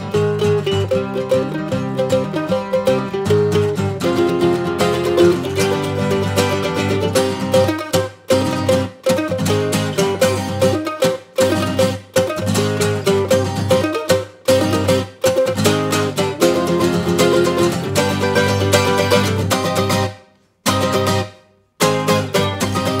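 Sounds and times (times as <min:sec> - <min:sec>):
mandolin and guitar folk music: 0:00.0 - 0:23.0.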